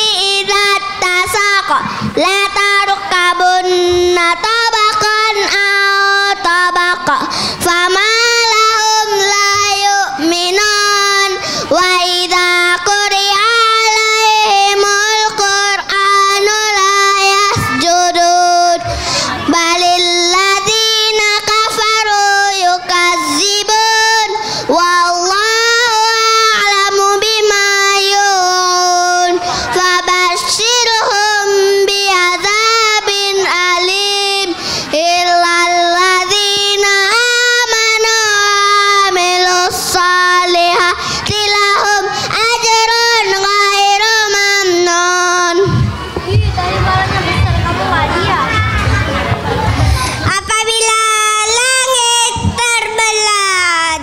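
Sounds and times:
boy singing into microphone: 0.0 - 47.6, 49.8 - 54.0.

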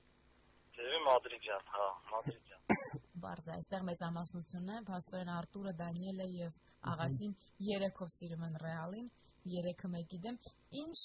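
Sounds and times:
person speaking: 0.8 - 6.2, 6.8 - 7.9.

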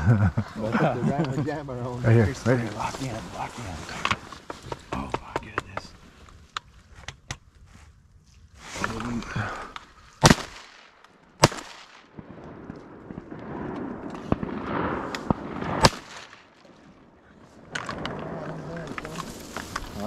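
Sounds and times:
shotgun shots: 10.2 - 16.6.

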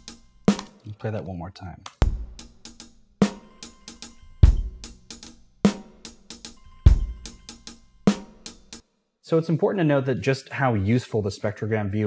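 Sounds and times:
drum kit beat: 0.0 - 0.8, 2.0 - 8.8.

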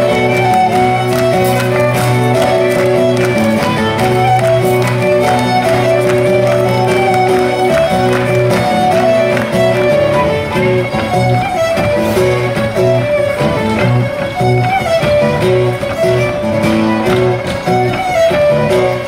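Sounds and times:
fiddle melody: 0.0 - 19.0
rhythmic guitar accompaniment: 0.0 - 19.0.

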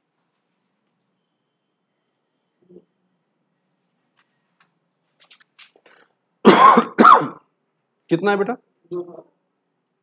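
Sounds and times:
man clearing his throat: 6.5 - 7.4.

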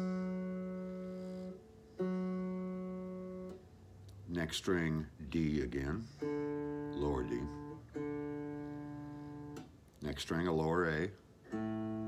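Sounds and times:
guitar string plucked and ringing: 6.0 - 9.8, 11.4 - 12.0.

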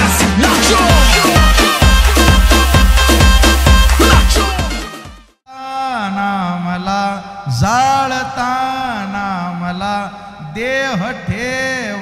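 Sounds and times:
man chanting: 0.4 - 2.0, 5.5 - 12.0.

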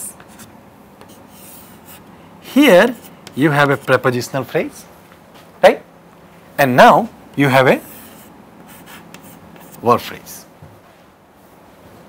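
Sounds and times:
chalk scratching on chalkboard: 0.2 - 4.0, 7.8 - 10.0.

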